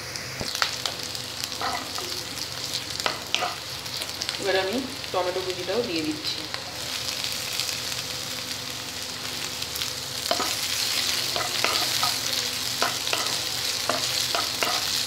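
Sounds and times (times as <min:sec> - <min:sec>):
vegetables sizzling in hot oil: 0:00.0 - 0:15.0
spatula scraping and tapping pan: 0:10.3 - 0:10.6, 0:11.3 - 0:12.2, 0:12.8 - 0:15.0.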